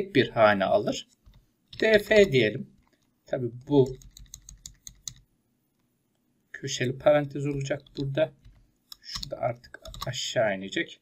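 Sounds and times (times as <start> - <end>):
keyboard typing: 1.1 - 5.3, 7.4 - 10.2.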